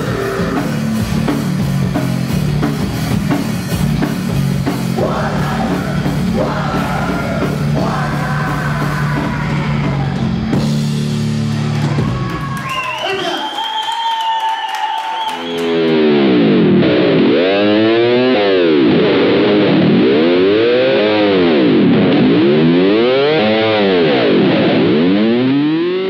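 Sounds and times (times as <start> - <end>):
distorted electric guitars sustaining: 0.0 - 12.3, 15.4 - 26.0
guitar chord with sweeping effect: 15.8 - 26.0.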